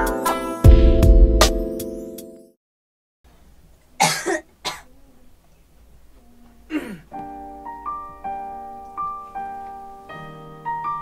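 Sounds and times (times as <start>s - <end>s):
person coughing: 4.0s - 4.9s, 6.7s - 7.1s.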